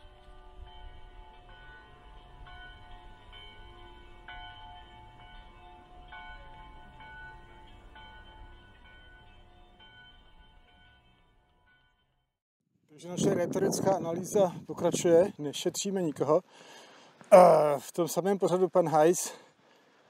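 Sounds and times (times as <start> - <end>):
carillon bells playing melody: 0.0 - 12.1.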